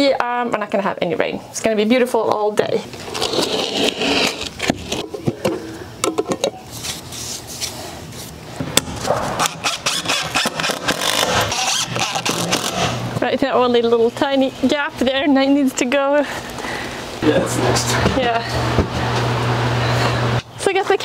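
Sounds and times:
cordless drill driving screws: 0:09.6 - 0:13.0.

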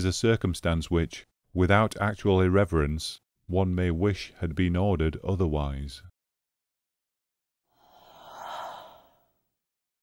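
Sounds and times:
whooshing transition effect: 0:07.8 - 0:09.2.

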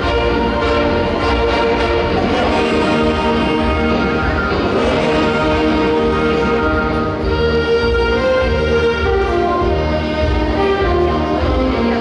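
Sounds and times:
saxophone ensemble playing chords: 0:00.0 - 0:12.0.

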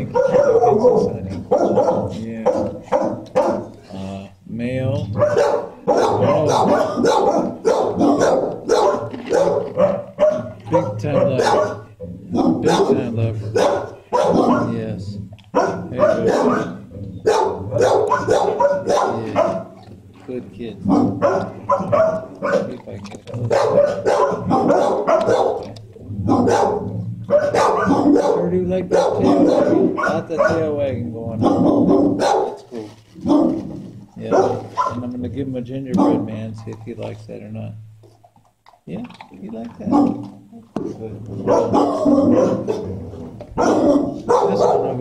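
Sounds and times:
dogs barking: 0:00.0 - 0:03.9, 0:04.9 - 0:35.2, 0:35.9 - 0:36.5, 0:39.7 - 0:45.0.

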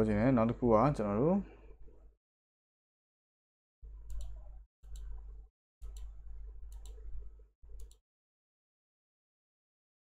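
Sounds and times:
computer mouse clicks: 0:04.0 - 0:08.0.

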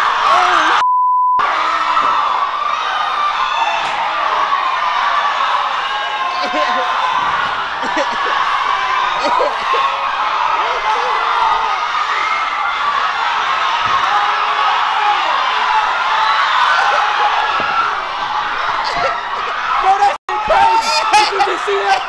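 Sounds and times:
people whooping: 0:00.0 - 0:00.8, 0:01.4 - 0:22.0
crowd chattering and calling out: 0:02.4 - 0:22.0.

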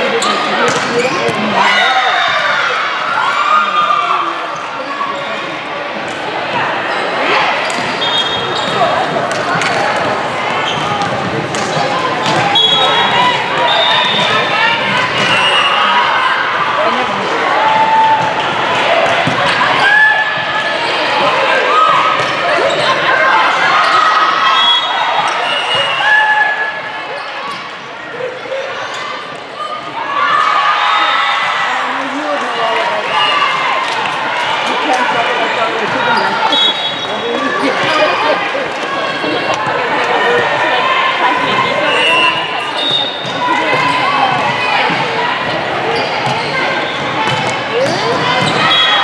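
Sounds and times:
sneakers squeaking on court: 0:00.0 - 0:01.6, 0:06.9 - 0:09.2, 0:10.5 - 0:14.5, 0:35.0 - 0:38.5, 0:45.8 - 0:49.0
players and spectators calling out: 0:00.0 - 0:49.0.

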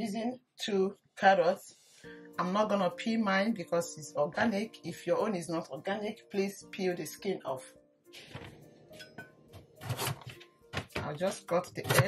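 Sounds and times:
background music: 0:00.0 - 0:12.0
knife chopping carrot on board: 0:09.7 - 0:12.0.

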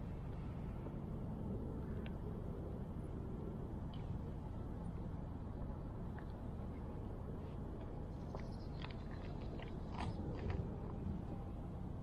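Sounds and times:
low background rumble: 0:00.0 - 0:12.0
small clicks and scrapes: 0:07.8 - 0:11.0.

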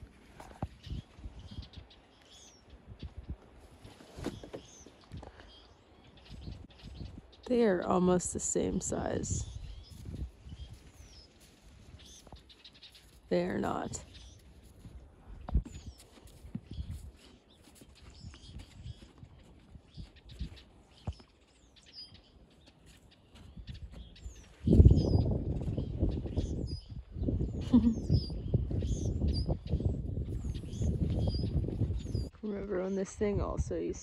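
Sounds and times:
small birds chirping: 0:00.4 - 0:34.0.

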